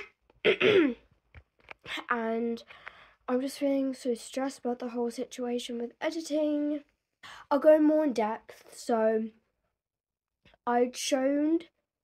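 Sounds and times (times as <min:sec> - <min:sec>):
girl coughing: 0:00.0 - 0:01.0.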